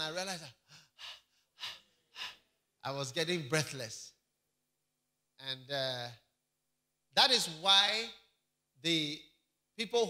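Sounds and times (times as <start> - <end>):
man panting: 0.6 - 2.5.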